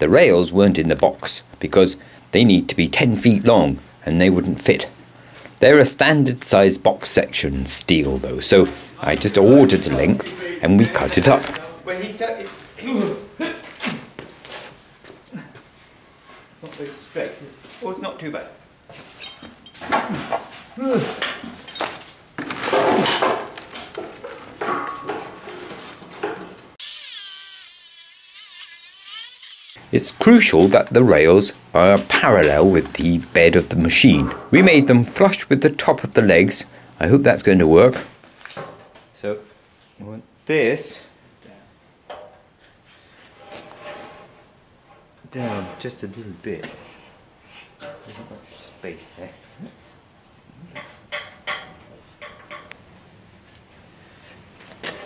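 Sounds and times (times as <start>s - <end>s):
tools and metal clattering: 19.0s - 26.6s, 50.6s - 52.8s
chop saw cutting steel: 26.8s - 29.8s.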